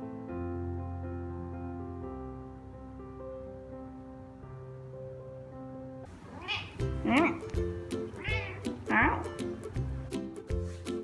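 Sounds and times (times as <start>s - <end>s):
background music: 0.0s - 11.0s
cat meowing: 6.2s - 7.6s, 8.2s - 9.4s.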